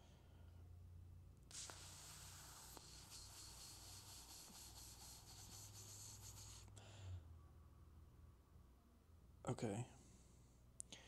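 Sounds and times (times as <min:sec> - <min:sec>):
scratchy hiss: 0:01.4 - 0:06.7.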